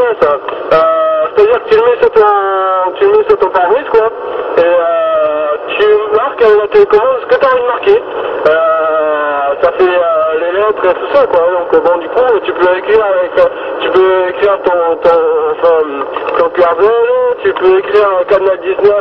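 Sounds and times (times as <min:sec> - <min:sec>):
man talking over cb radio: 0:00.0 - 0:19.0.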